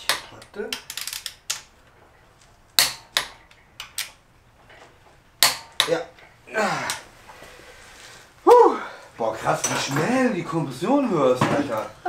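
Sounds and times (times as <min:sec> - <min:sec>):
hand tools clinking on steel: 0:09.4 - 0:10.3.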